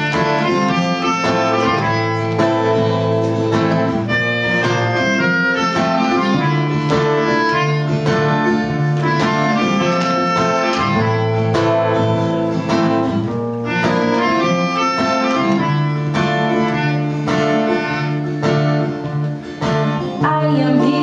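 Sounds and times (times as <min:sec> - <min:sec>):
melodica playing melody: 0:00.0 - 0:20.2
strummed acoustic guitar: 0:00.0 - 0:21.0.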